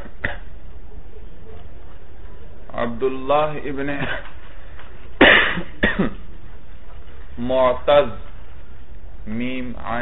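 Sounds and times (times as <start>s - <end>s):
person coughing: 0.0s - 0.5s, 5.2s - 6.3s.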